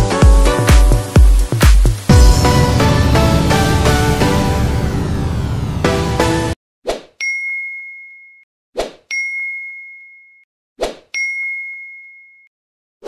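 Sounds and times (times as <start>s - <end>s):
bell-like ding: 7.2s - 8.5s, 9.1s - 10.5s, 11.2s - 12.5s.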